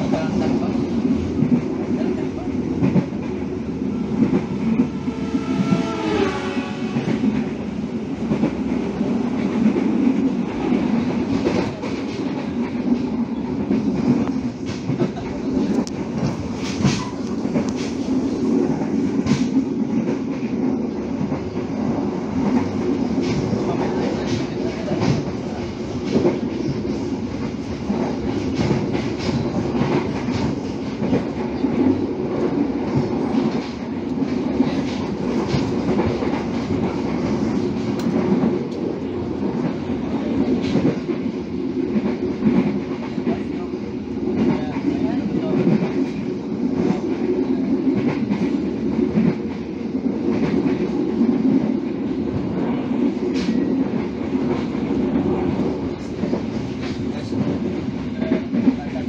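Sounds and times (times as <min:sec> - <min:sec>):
rail clicks: 0:00.0 - 0:59.0
train wheels rumbling on rails: 0:00.0 - 0:59.0.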